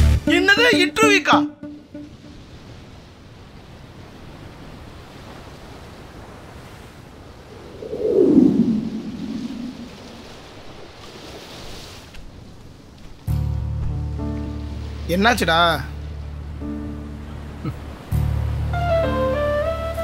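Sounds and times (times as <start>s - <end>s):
sea surf washing on a beach: 0.4s - 13.4s, 14.5s - 20.0s.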